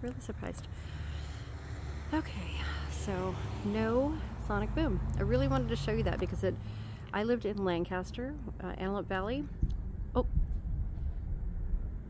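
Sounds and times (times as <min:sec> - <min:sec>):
distant sonic boom rumble: 0:09.1 - 0:12.0.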